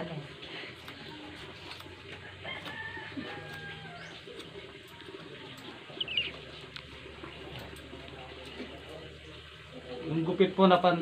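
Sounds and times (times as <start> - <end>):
birds chirping: 2.1 - 10.1.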